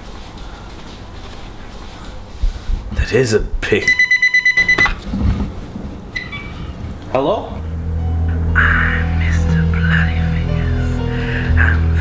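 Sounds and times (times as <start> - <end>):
short beep: 3.8 - 5.0.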